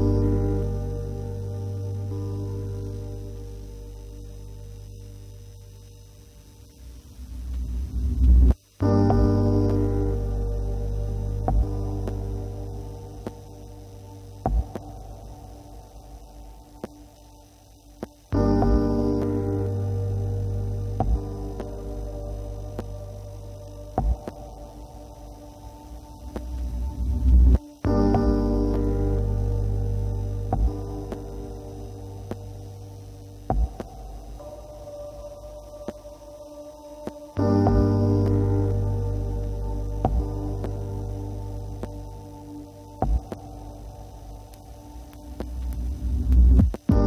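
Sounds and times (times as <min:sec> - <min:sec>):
low electronic drone: 0:00.0 - 0:47.0
low steady hum: 0:00.0 - 0:47.0.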